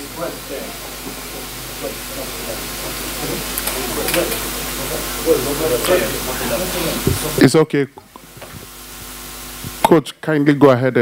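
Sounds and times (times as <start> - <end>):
murmured voices: 0.0 - 7.6
steady background hiss: 0.0 - 11.0.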